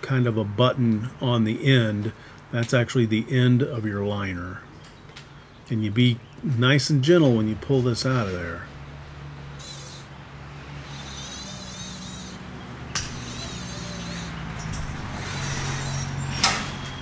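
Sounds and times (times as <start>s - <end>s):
steady low hum: 0.0s - 17.0s
wire liner scraping hiss: 9.6s - 17.0s
sharp click: 13.0s - 13.3s.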